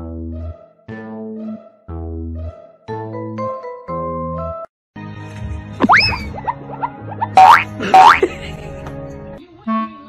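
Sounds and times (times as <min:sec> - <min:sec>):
playful background music: 0:00.0 - 0:10.0
short rising blips: 0:05.8 - 0:08.2
cartoon boing effects: 0:05.8 - 0:08.3.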